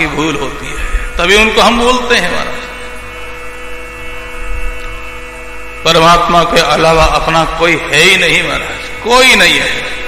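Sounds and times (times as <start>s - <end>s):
drone of held tones: 0.0s - 10.0s
low electrical hum: 0.0s - 10.0s.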